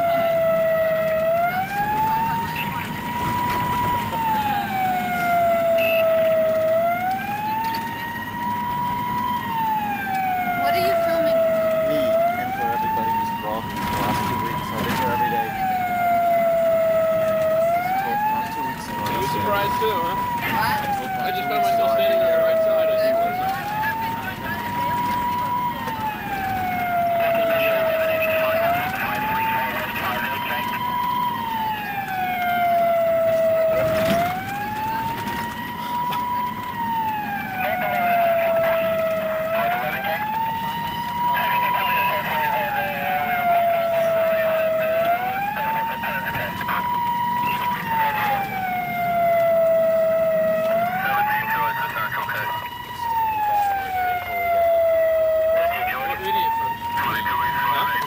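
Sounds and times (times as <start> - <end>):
police siren wailing: 0.0 - 58.0.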